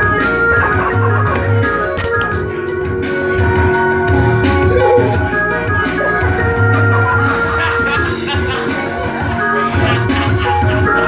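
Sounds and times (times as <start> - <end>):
low bass notes: 0.0 - 11.0
organ-like keyboard chords: 0.0 - 11.0.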